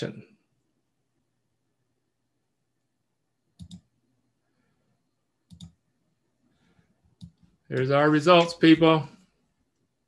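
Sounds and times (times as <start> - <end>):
computer mouse clicks: 3.6 - 4.0, 5.5 - 5.8, 7.0 - 8.6.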